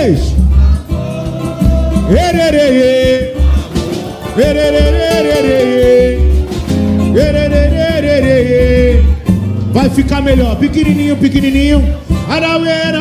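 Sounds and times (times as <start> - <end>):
steady low drum beat: 0.0 - 13.0
group of voices singing: 0.1 - 9.3
plucked string instrument: 0.3 - 13.0.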